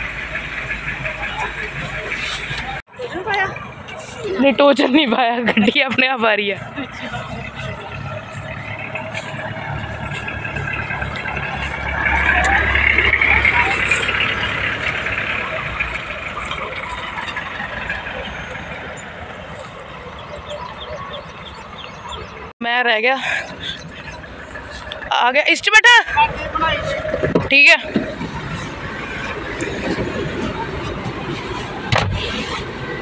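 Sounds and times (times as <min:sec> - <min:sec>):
vehicle engines on dirt track: 0:00.0 - 0:33.0.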